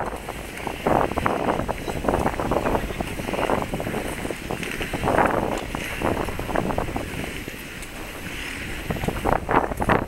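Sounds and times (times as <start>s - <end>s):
wind buffeting microphone: 0.0s - 10.0s
crowd noise at ice rink: 0.2s - 10.0s.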